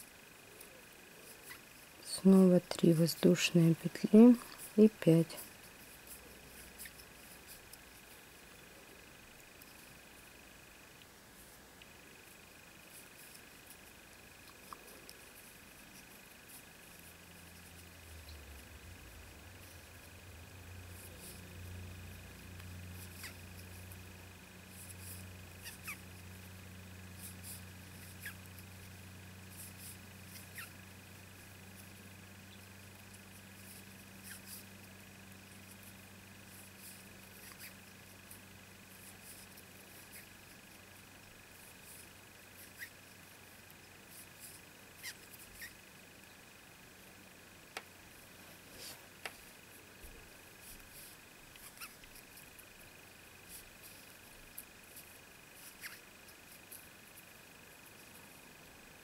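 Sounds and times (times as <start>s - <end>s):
low electrical hum: 0.0s - 59.0s.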